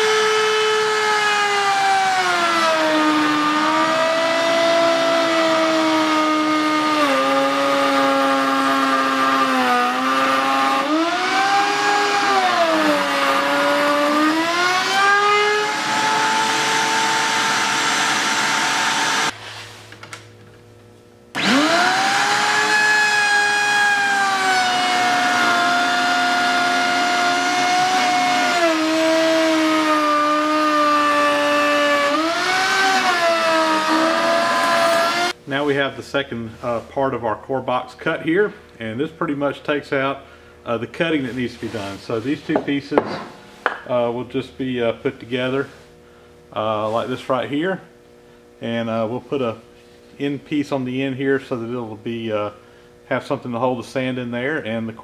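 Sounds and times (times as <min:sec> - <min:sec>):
router cutting wood: 0:00.0 - 0:19.4, 0:21.4 - 0:35.4.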